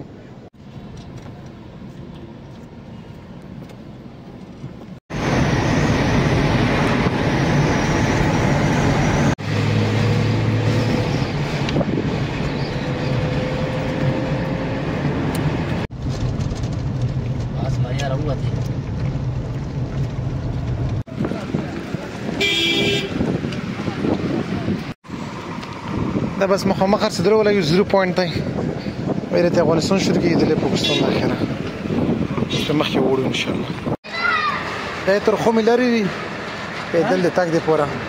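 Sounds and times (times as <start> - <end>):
car engine and road noise: 0.0 - 38.0.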